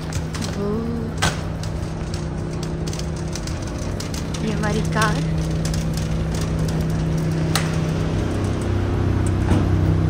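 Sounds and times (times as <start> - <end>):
dull rumble: 0.0 - 10.0
low mechanical hum: 0.0 - 10.0.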